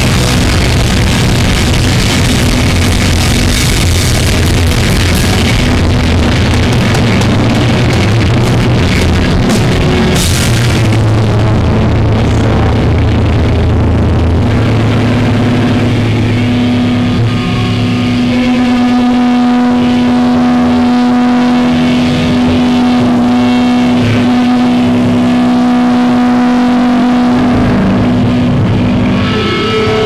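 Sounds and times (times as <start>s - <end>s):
amp noise: 0.0s - 30.0s
distorted guitar and bass drone: 0.0s - 30.0s.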